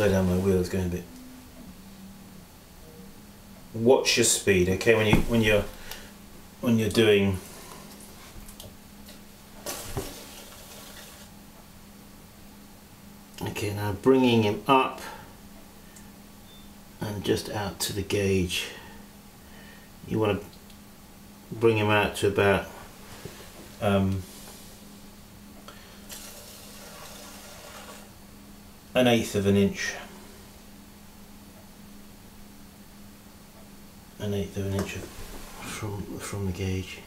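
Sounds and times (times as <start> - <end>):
potter's wheel humming: 0.0 - 16.4, 22.1 - 32.1.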